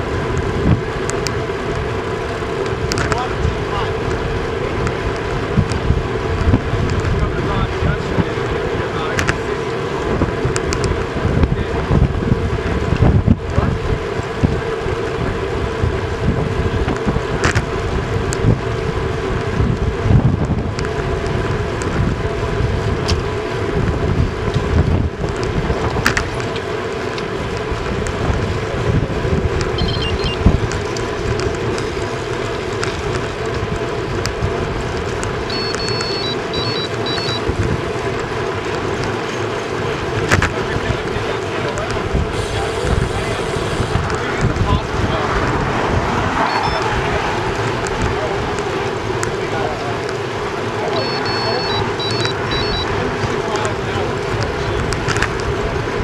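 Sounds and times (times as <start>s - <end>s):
wind buffeting the microphone: 0.0s - 35.6s, 37.4s - 39.2s, 39.8s - 50.4s
tyres humming on the road: 0.0s - 56.0s.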